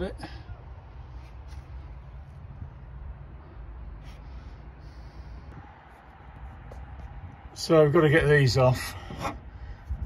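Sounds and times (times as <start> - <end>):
steady low rumble: 0.6 - 8.2.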